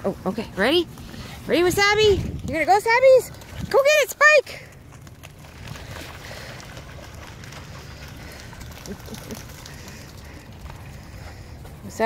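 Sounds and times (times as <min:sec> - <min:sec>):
dogs splashing through water: 0:00.2 - 0:12.0.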